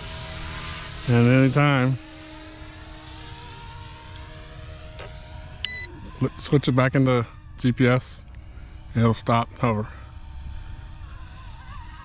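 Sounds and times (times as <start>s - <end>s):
rc helicopter motor whine: 0.0s - 12.0s.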